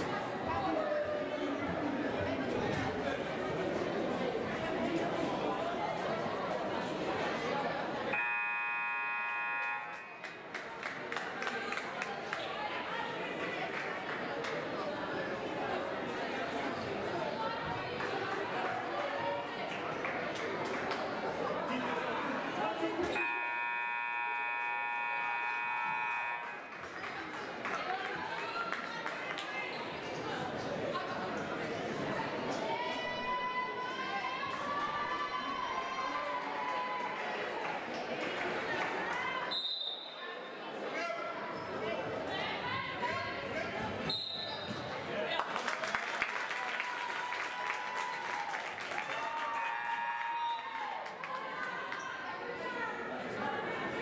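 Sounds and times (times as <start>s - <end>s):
crowd chatter: 0.0s - 54.0s
scoreboard buzzer: 8.2s - 10.3s, 23.2s - 26.8s.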